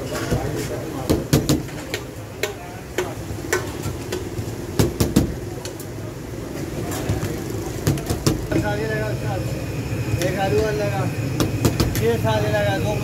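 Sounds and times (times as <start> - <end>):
people talking: 0.0 - 3.2, 5.5 - 11.2, 11.8 - 13.0
low traffic rumble: 0.0 - 13.0.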